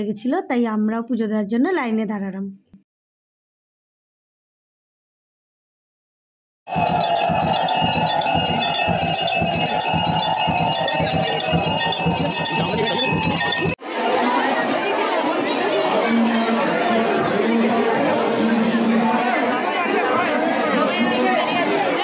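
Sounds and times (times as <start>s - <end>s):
metal temple bells ringing: 6.7s - 13.8s
crowd chatter: 6.7s - 22.0s.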